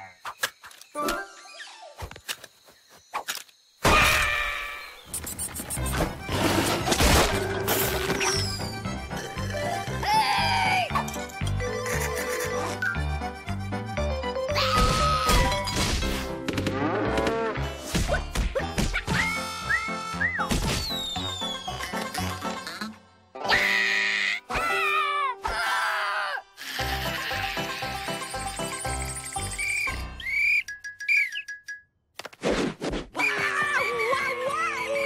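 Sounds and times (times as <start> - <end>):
cartoon background music: 5.7 - 31.7
whistle-like chirps: 19.2 - 22.0, 28.2 - 31.7.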